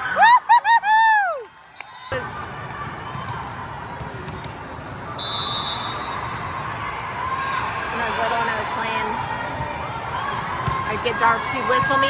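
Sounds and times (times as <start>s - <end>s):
crowd chatter: 2.1s - 12.0s
referee's whistle blast: 5.1s - 6.1s.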